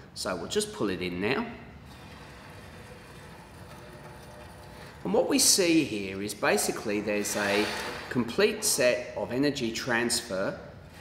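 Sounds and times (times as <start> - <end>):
trolleys rolling on metal track: 1.9 - 5.6.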